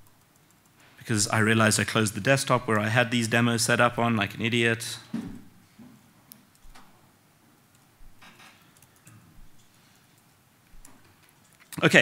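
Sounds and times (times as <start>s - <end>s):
laptop keyboard keystrokes: 6.3s - 7.0s, 7.7s - 9.7s, 10.7s - 11.7s.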